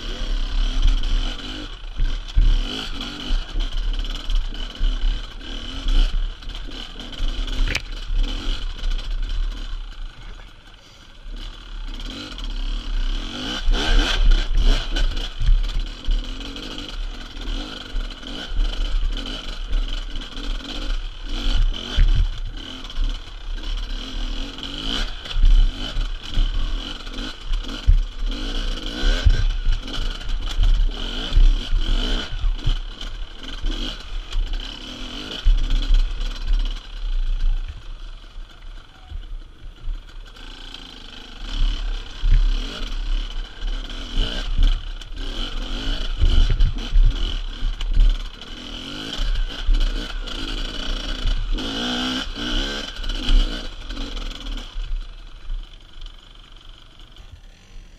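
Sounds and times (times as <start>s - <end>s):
motorcycle engine revving: 0.0s - 57.9s.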